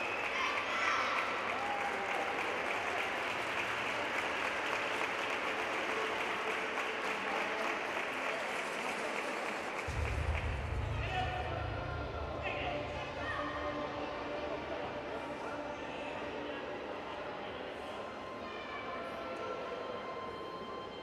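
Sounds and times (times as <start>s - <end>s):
audience applauding: 0.0s - 11.3s
low rumble: 9.9s - 13.9s.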